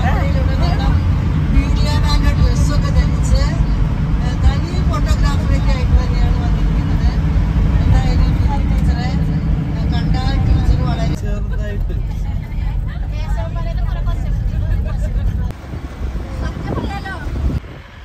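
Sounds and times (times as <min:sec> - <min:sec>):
vehicle road rumble: 0:00.0 - 0:18.0.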